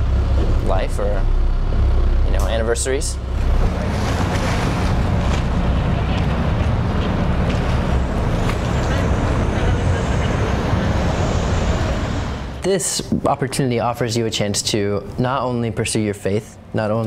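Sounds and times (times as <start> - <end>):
boat engine running: 0.0 - 12.6
water noise: 0.0 - 13.9.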